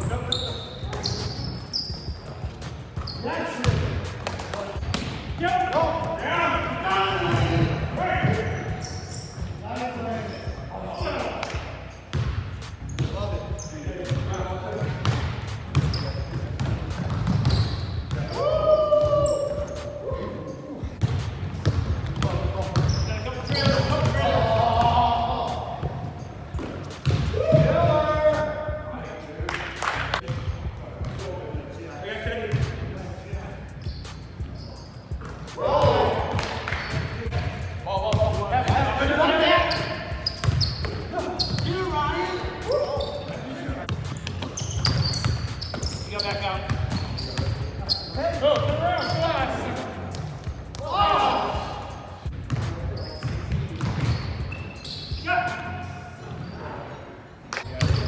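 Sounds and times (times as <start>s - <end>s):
players calling out: 17.5s - 20.9s.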